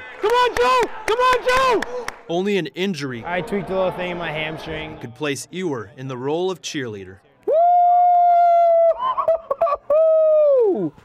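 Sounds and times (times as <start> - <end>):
man cheering woo: 7.5 - 11.0
man laughing: 8.8 - 10.3.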